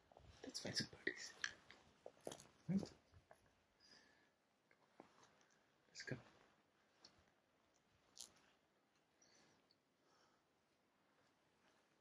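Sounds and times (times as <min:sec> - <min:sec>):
faint clicks and rustles: 0:04.6 - 0:12.0.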